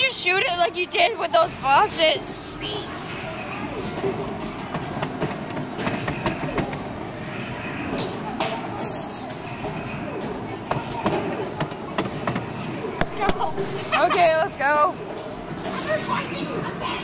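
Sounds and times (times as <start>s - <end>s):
people chattering: 0.0s - 17.0s
sharp clicks and knocks: 4.5s - 6.9s, 10.7s - 13.5s.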